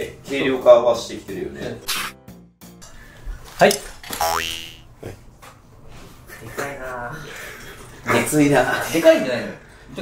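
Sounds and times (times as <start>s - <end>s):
cartoon boing sound effect: 4.2s - 4.9s.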